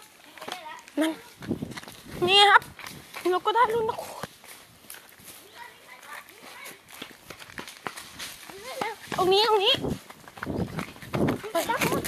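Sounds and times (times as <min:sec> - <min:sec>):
footsteps crunching through dry leaves: 0:00.0 - 0:12.0.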